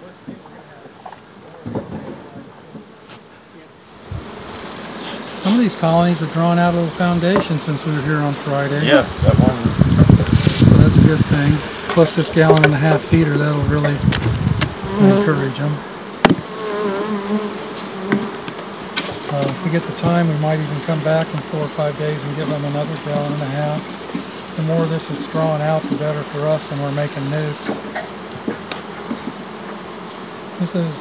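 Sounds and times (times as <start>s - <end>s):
honey bees buzzing: 0.1s - 31.0s
dull knock: 16.2s - 16.5s.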